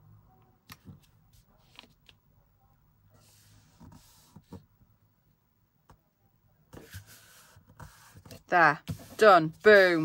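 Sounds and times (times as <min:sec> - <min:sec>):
paper rustling and rubbing: 0:06.8 - 0:10.0.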